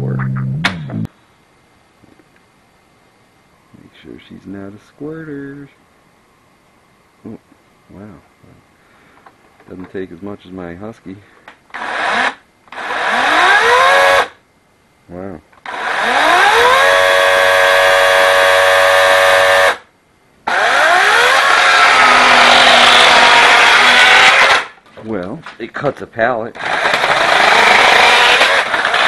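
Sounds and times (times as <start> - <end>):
battery chainsaw whining: 11.7 - 14.3, 15.6 - 19.8, 20.5 - 24.8, 26.6 - 29.0.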